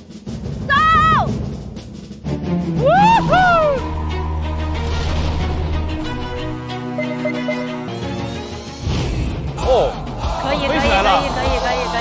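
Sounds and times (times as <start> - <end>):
background music: 0.0 - 12.0
person shouting excitedly: 0.7 - 1.4
swooping rise-and-fall tones: 2.6 - 8.2.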